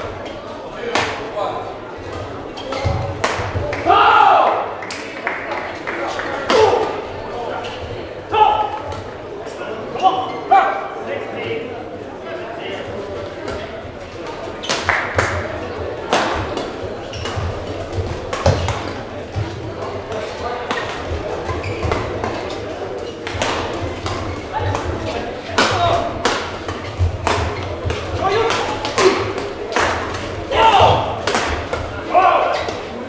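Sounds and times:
murmur of voices: 0.0s - 33.0s
racket striking shuttlecock: 25.6s - 30.3s, 31.2s - 31.9s.

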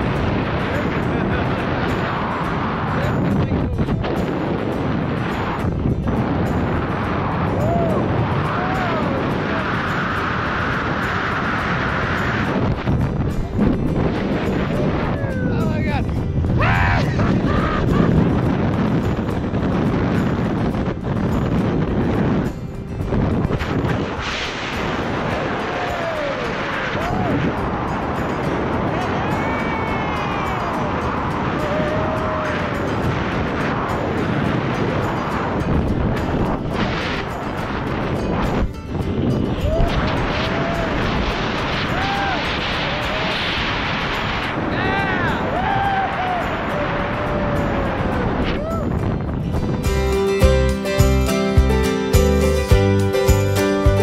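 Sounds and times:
music: 0.0s - 54.0s
wind rushing over microphone: 0.0s - 54.0s.

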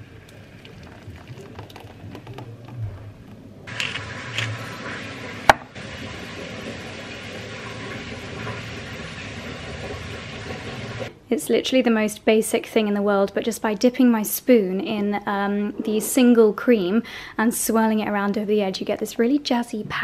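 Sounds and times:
soup pouring into bowl: 0.0s - 2.8s.

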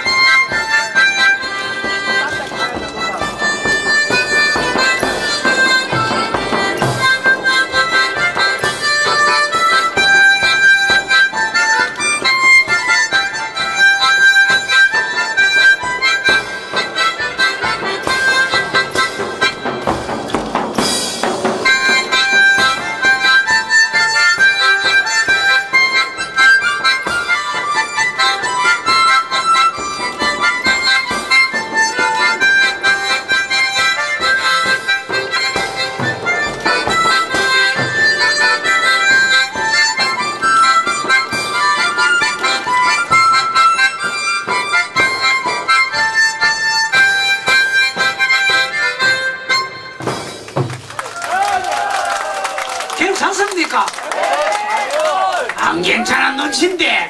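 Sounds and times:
harmonica melody: 0.0s - 50.4s
backing track with steady beat: 0.0s - 51.4s.

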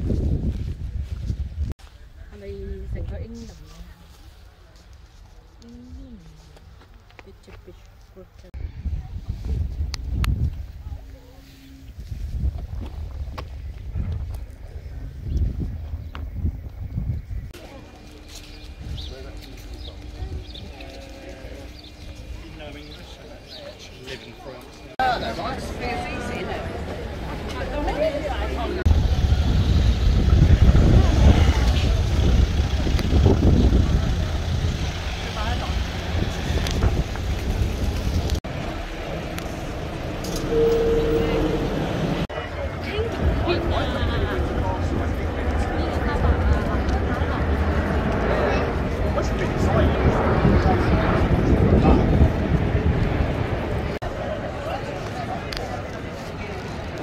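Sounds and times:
wind buffeting microphone: 0.0s - 1.8s, 8.5s - 17.8s, 25.5s - 57.0s
people's voices: 1.8s - 57.0s
vehicles rumbling past: 17.6s - 57.0s.

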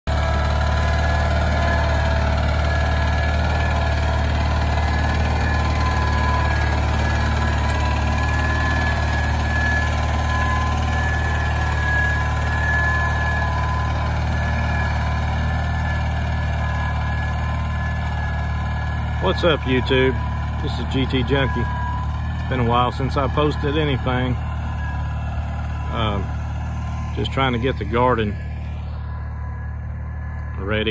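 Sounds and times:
garden tractor engine running: 0.1s - 30.9s.

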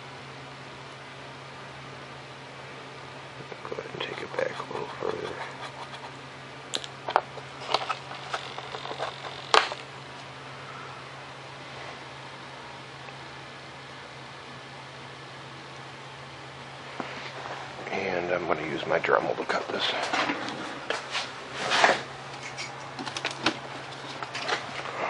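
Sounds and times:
low room hum: 0.0s - 25.0s.

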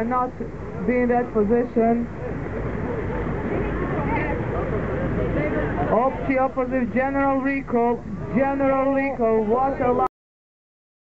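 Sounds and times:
steady rushing noise: 0.0s - 10.1s
faint indistinct voices talking: 1.8s - 10.1s.

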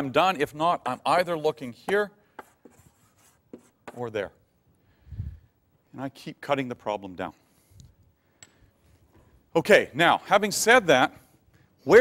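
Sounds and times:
chalk scratching on blackboard: 1.9s - 4.1s.

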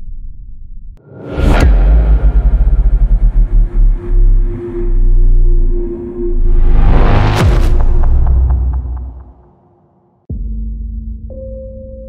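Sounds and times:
deep pulsing low sound: 0.8s - 9.6s
whoosh and hit: 1.0s - 9.8s.

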